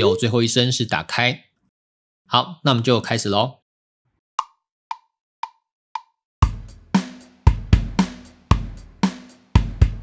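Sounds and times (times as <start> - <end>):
closed hi-hat taps: 4.4 - 10.0
kick and snare drum beat: 6.4 - 10.0.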